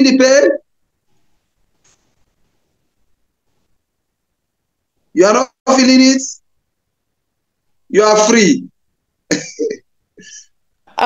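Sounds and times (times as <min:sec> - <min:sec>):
faint breathy hiss: 0:00.8 - 0:05.2
person coughing: 0:09.3 - 0:10.5.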